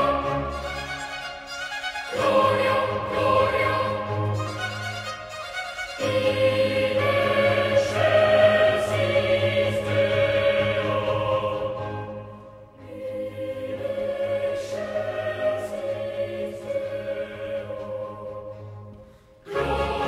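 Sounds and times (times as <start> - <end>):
choral singing: 0.0 - 5.1, 5.8 - 20.0.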